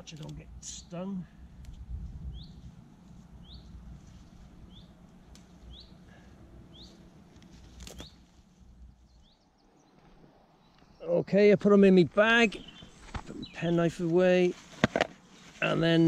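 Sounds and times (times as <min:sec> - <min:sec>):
plant stems snapping: 0:00.0 - 0:00.4, 0:01.6 - 0:01.9, 0:05.2 - 0:05.7, 0:07.4 - 0:08.4
rustling of plants: 0:00.0 - 0:11.0, 0:11.7 - 0:16.0.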